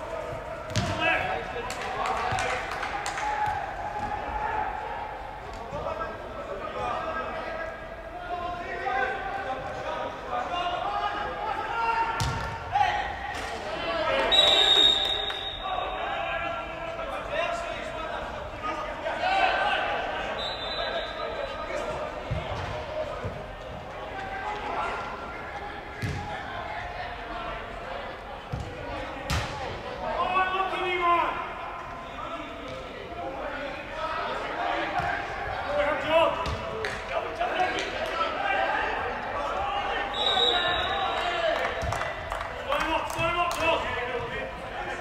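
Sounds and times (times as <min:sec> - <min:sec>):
players calling: 0:00.0 - 0:45.0
ball kick: 0:00.7 - 0:01.0, 0:12.2 - 0:12.6, 0:26.0 - 0:26.3, 0:36.4 - 0:37.0
referee's whistle blast: 0:14.2 - 0:15.8, 0:20.3 - 0:21.6, 0:40.1 - 0:41.4.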